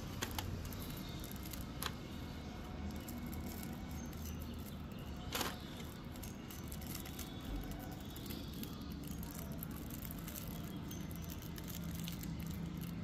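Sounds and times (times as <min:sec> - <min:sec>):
plastic wrapper crinkling: 0:00.0 - 0:13.0.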